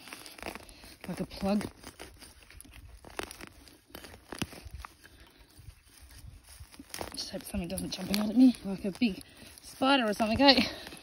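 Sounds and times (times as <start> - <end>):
shovel cutting into pine needles: 0.0 - 11.0.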